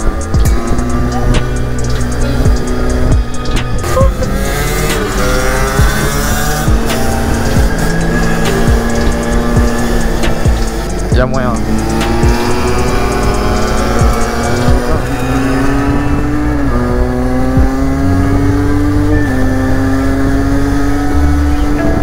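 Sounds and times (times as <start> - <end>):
background music: 0.0 - 22.0
moped engines revving: 0.0 - 22.0.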